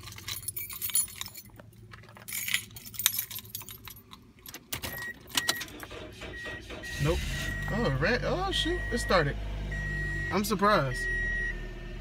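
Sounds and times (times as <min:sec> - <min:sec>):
keys jangling: 0:00.0 - 0:05.8
car engine cranking: 0:00.0 - 0:12.0.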